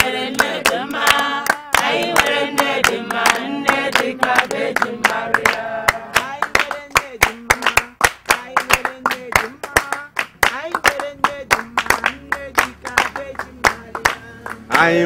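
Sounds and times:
hands clapping rhythmically: 0.0 - 14.9
group singing: 0.0 - 15.0.

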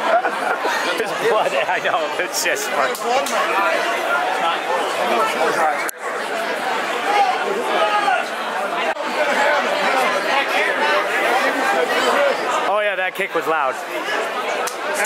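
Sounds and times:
crowd chatter in a large hall: 0.0 - 15.0.

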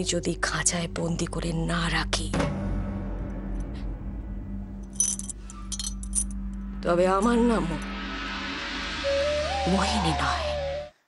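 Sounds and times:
bangles clinking: 4.8 - 6.6.

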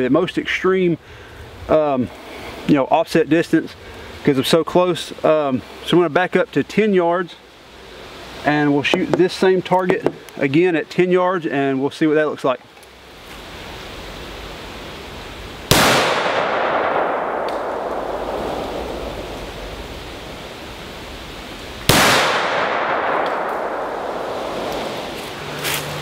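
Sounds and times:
gunshots echoing through woods: 15.7 - 20.0, 21.8 - 25.4.

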